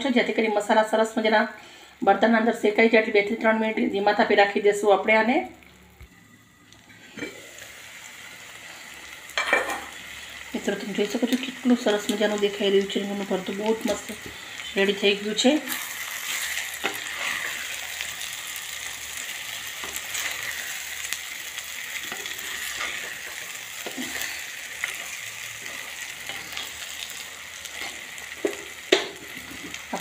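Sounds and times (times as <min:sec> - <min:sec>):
food sizzling in oil: 0:02.1 - 0:30.0.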